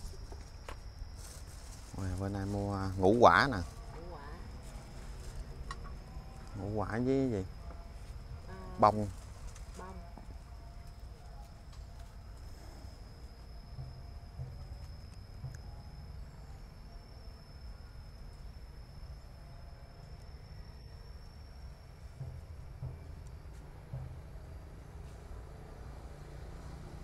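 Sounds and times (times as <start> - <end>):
low steady rumble: 0.0 - 27.0
thin high-pitched whine: 0.0 - 27.0.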